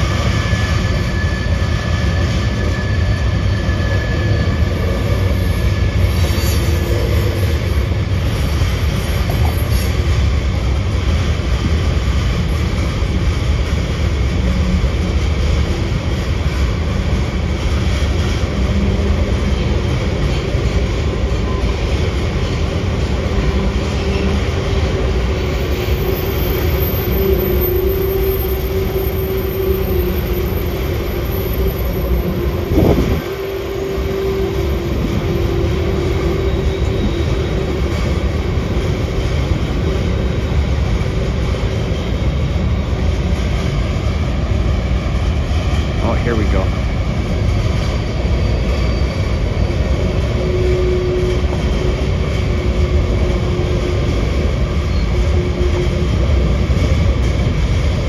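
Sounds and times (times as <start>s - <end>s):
freight train wheels rumbling: 0.0s - 58.0s.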